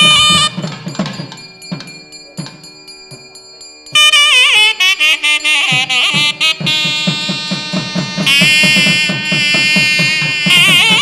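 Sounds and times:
nadaswaram wavering held notes: 0.0s - 11.0s
rapid thavil drum strokes: 0.0s - 11.0s.

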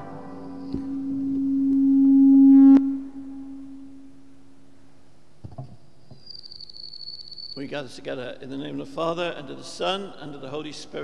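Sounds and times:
low steady tone: 0.0s - 5.2s
faint low hum: 0.0s - 6.1s.

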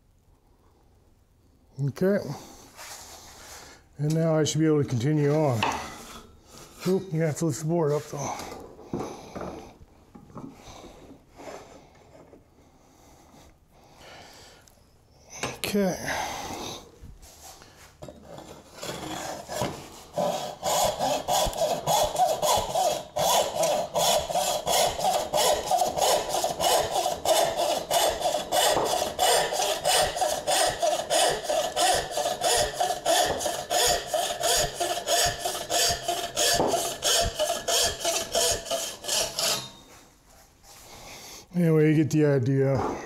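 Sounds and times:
frame saw cutting wood: 18.2s - 39.8s.

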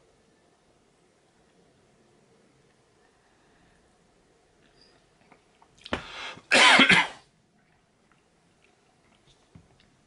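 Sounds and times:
man clearing throat: 6.5s - 7.2s
man coughing: 6.5s - 7.2s.

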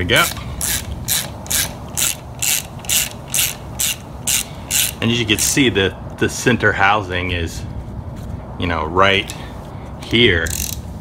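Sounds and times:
ratchet wrench clicking: 0.2s - 5.6s, 10.4s - 10.9s.

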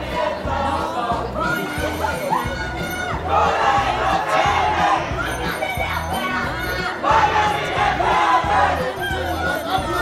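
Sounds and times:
crowd shouting and chanting: 0.0s - 10.0s.

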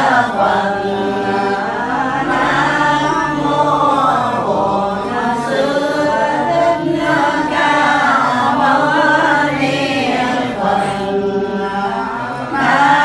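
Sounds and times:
group of voices chanting: 0.0s - 13.0s.

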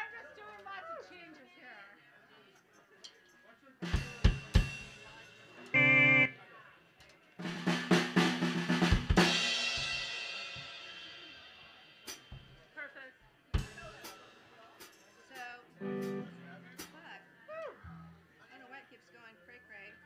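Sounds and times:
drum hits: 3.9s - 5.0s, 7.4s - 10.7s
rock band playing: 5.8s - 6.3s, 15.8s - 16.9s.

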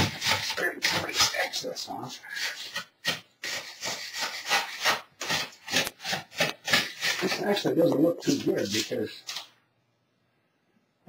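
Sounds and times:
putty knife scraping plaster: 0.0s - 9.5s.

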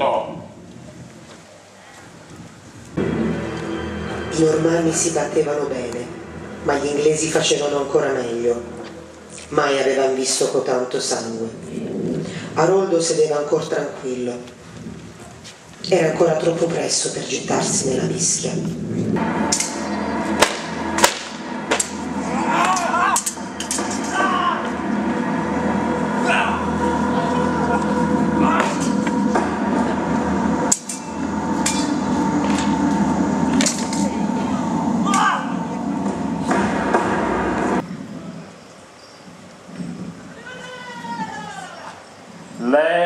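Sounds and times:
steady background noise: 0.0s - 43.0s
swords clashing: 20.4s - 24.6s.

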